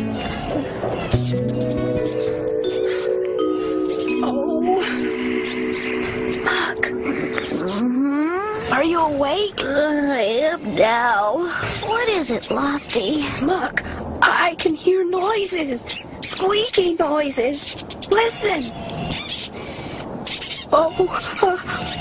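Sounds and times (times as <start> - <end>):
mice squeaking: 0.0 - 3.1, 3.8 - 6.6, 7.2 - 7.9, 10.1 - 13.6, 15.1 - 22.0
soft music of held notes: 0.0 - 8.7.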